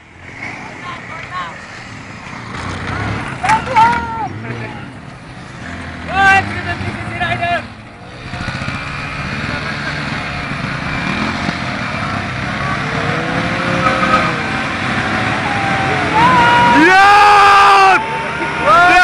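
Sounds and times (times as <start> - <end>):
motorcycle engines revving: 0.0 - 19.0
onlookers shouting: 2.8 - 4.9, 12.6 - 19.0.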